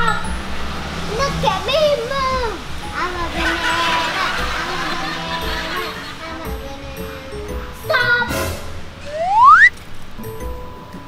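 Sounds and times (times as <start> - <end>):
background music: 0.0 - 11.0
rising whistle glide: 9.1 - 9.7
short swish: 9.1 - 9.7.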